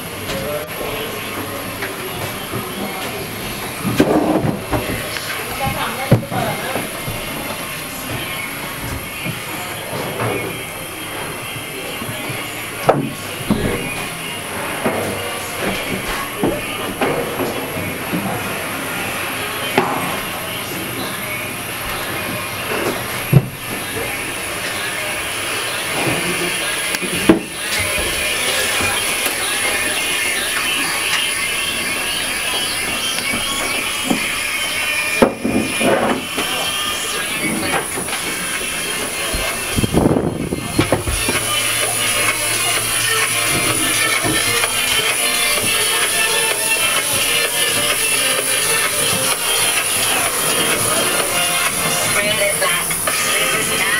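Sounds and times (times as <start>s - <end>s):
background voices: 0.0s - 53.9s
thin high whine: 0.0s - 53.9s
background music: 40.7s - 53.9s.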